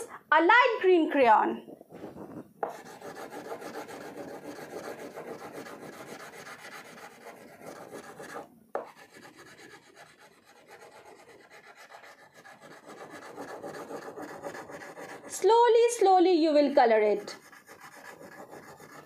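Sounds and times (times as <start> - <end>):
crayon rubbing on paper: 1.9 - 15.5, 17.0 - 19.0.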